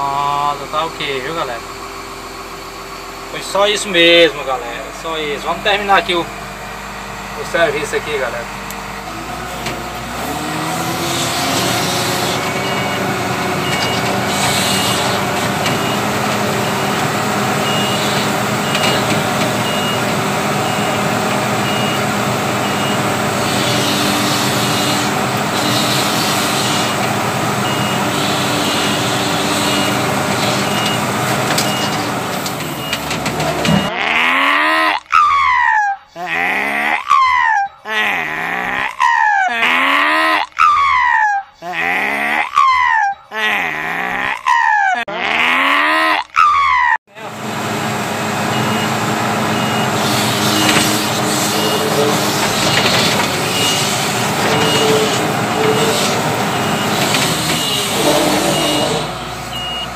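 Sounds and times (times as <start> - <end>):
diesel engine running: 0.0 - 34.0, 47.1 - 59.9
high pulsing beep: 15.8 - 21.0, 59.5 - 59.9.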